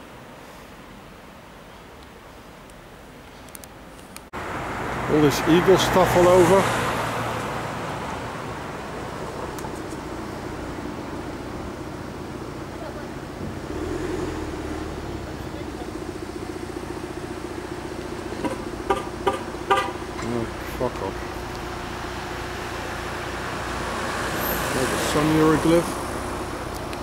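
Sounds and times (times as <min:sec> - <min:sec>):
street traffic hum: 0:00.0 - 0:27.0.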